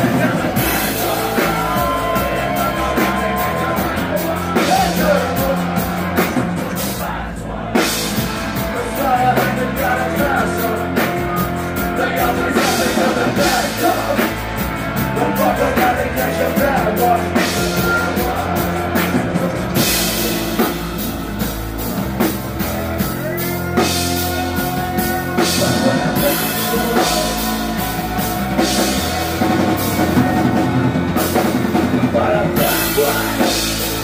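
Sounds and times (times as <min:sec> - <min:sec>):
drums and cymbals beating: 0:00.0 - 0:34.0
live rock band: 0:00.0 - 0:34.0.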